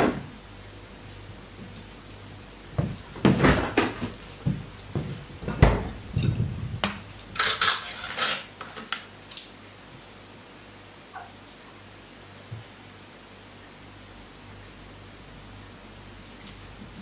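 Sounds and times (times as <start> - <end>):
dishes and utensils clinking: 7.4 - 8.9.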